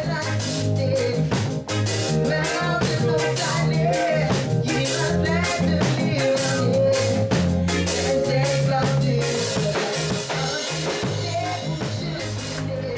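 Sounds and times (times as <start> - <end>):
bass line: 0.0 - 12.9
drum kit beat: 0.0 - 12.9
electric guitar: 0.0 - 12.9
person singing: 0.0 - 12.9.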